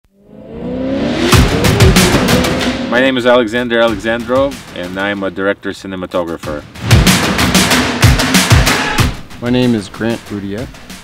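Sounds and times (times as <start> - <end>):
deep booming hits: 1.1 - 4.9, 6.6 - 9.4.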